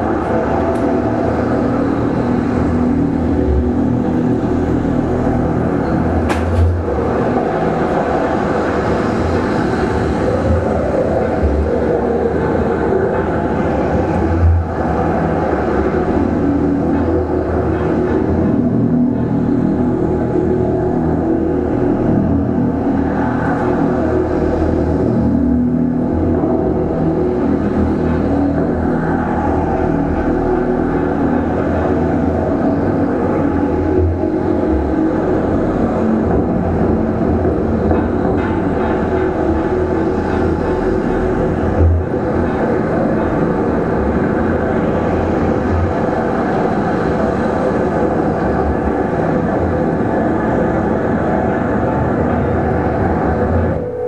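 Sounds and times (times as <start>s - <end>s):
deep rumble: 0.0s - 54.0s
drone of layered held tones: 0.0s - 54.0s.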